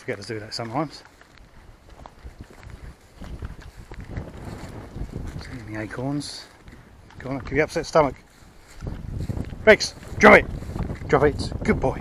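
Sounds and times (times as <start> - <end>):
footsteps on dirt path: 0.0 - 12.0
wind rumble on microphone: 1.4 - 12.0.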